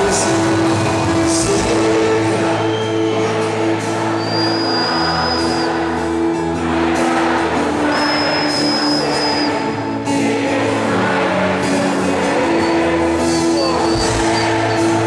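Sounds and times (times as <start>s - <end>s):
person singing: 0.0s - 4.4s
worship band music: 0.0s - 15.0s.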